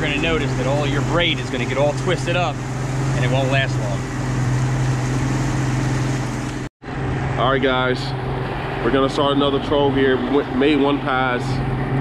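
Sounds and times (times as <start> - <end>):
boat engine humming: 0.0 - 12.0
water noise: 0.0 - 12.0
wind: 0.0 - 12.0.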